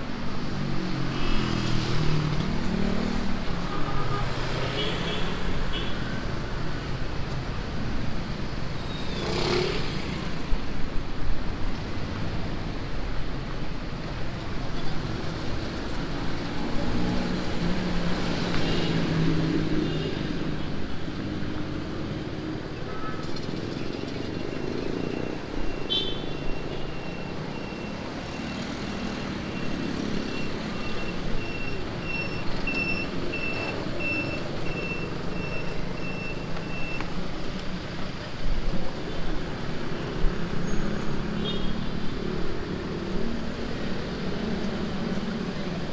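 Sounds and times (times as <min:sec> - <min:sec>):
road traffic passing: 0:00.0 - 0:45.9
vehicle warning beeper: 0:24.3 - 0:37.1.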